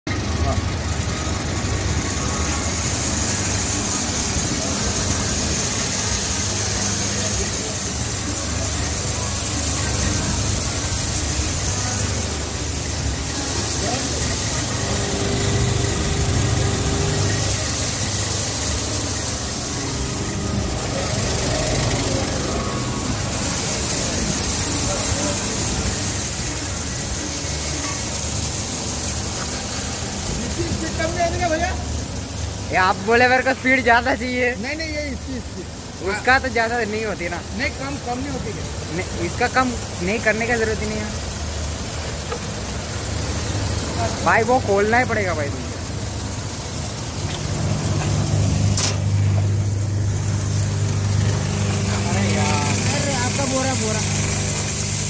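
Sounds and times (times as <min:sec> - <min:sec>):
electric motor humming: 0:00.1 - 0:34.1, 0:35.1 - 0:55.0.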